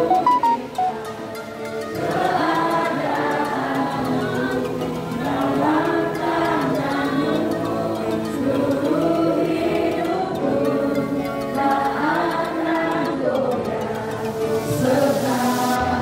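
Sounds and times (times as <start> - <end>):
congregation singing a hymn: 0.0 - 16.0.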